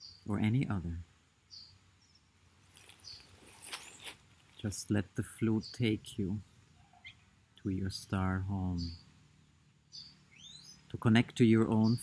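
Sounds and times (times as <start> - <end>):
faint high bird chirp: 0.0 - 0.8, 1.5 - 4.7, 5.6 - 7.9, 8.6 - 12.0.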